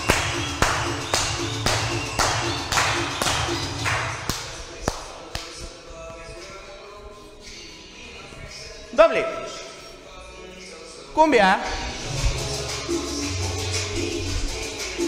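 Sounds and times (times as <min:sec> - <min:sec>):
hands clapping in time: 0:00.0 - 0:05.6
dance music: 0:00.0 - 0:15.0.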